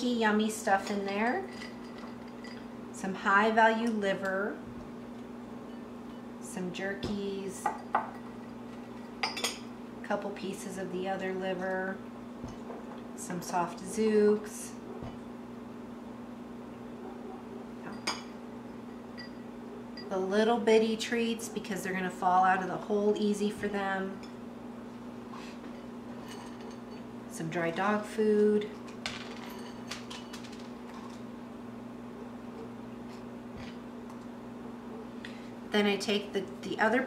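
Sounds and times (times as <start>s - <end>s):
steady low hum: 0.0s - 37.0s
glass bowl clink: 0.8s - 2.8s, 7.7s - 9.7s, 17.8s - 20.2s, 29.1s - 30.4s.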